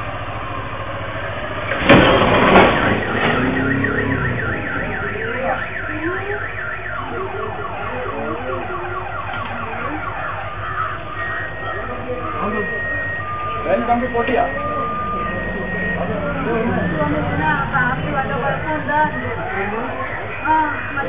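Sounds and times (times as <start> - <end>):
car crash: 1.5 - 5.8
car alarm sweeping tone: 1.5 - 21.0.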